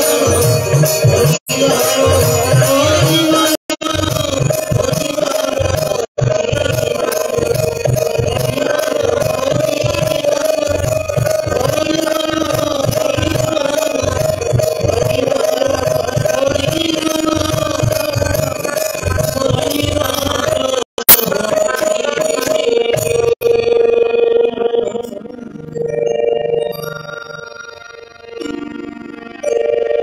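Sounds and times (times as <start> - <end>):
harmonium drone: 0.0 - 30.0
voices singing: 1.3 - 4.3.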